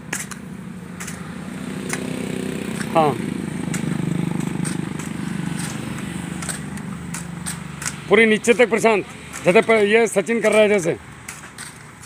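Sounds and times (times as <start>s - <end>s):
motor engine running: 0.4s - 12.0s.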